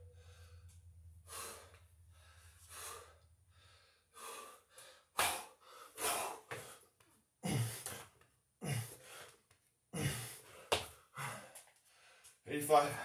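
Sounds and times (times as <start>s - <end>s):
man breathing hard: 0.0s - 13.0s.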